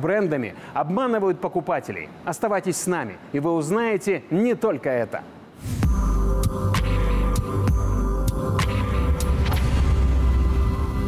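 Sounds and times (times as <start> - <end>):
background music: 5.6 - 11.0.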